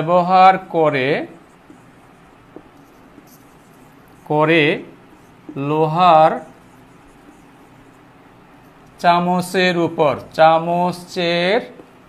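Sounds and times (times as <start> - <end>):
marker pen writing on board: 1.3 - 9.0, 11.7 - 12.0.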